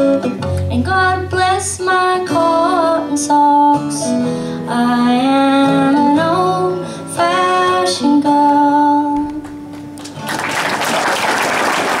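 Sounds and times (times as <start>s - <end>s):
audience applause: 10.0s - 12.0s.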